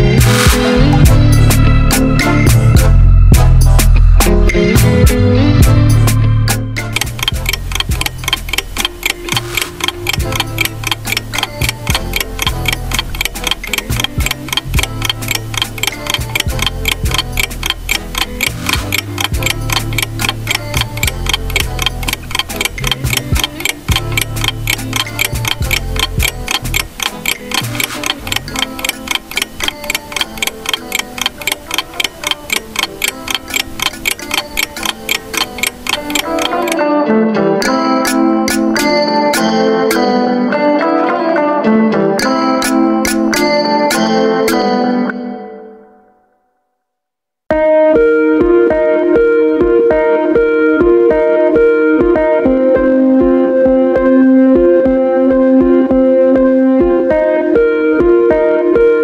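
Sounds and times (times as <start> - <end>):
background music: 0.0 - 46.4, 47.5 - 59.0
clock ticking: 6.9 - 36.8, 37.6 - 40.2, 42.2 - 44.7.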